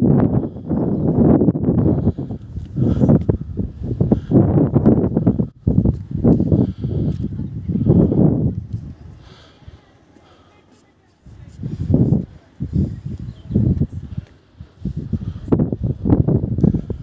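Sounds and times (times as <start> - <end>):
gusty wind on microphone: 0.0 - 9.8, 11.2 - 17.0.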